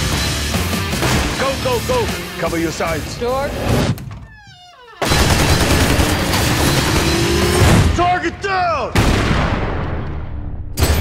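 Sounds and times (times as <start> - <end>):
rapid automatic gunfire: 5.0 - 7.6.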